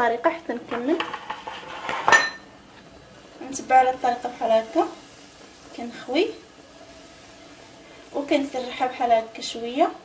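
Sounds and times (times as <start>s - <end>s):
cookware clinking with metallic ring: 2.1s - 2.5s.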